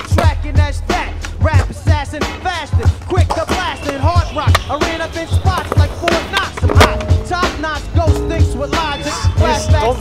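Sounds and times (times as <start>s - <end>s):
skateboard clacks: 0.0s - 0.4s, 1.2s - 8.3s
skateboard wheels rolling: 0.0s - 9.2s
hip-hop music with kick drum: 0.0s - 10.0s.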